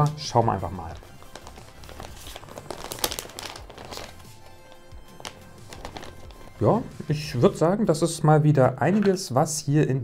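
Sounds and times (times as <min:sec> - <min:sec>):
background music: 0:00.0 - 0:10.0
plastic bag crinkling: 0:00.6 - 0:07.1.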